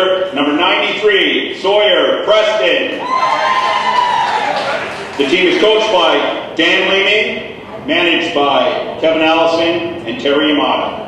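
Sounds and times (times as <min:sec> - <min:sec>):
light crowd noise: 0:00.0 - 0:11.0
spectator whooping cheer: 0:03.0 - 0:05.2.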